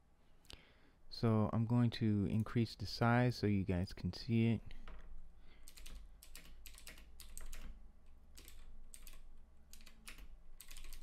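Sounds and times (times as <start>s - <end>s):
computer keyboard typing: 5.6s - 11.0s.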